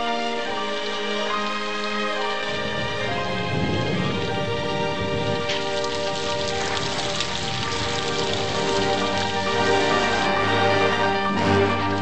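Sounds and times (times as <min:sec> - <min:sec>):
music with sustained notes: 0:00.0 - 0:12.0
rain pattering: 0:00.0 - 0:12.0.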